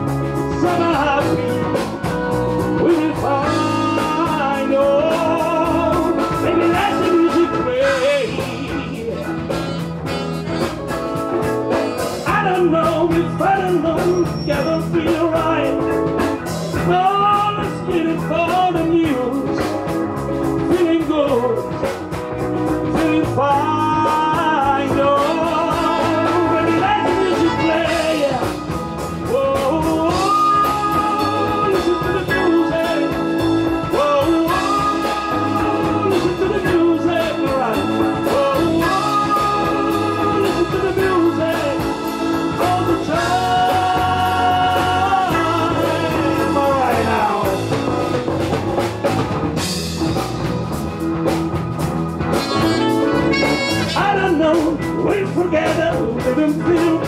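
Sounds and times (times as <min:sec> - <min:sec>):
bass: 0:00.0 - 0:57.0
drum kit: 0:00.0 - 0:57.0
electric guitar: 0:00.0 - 0:57.0
sliding lead melody: 0:00.0 - 0:57.0.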